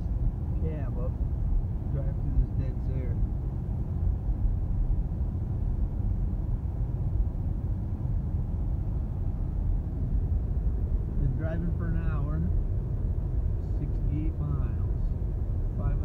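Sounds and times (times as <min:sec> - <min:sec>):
road and tyre rumble: 0:00.0 - 0:16.0.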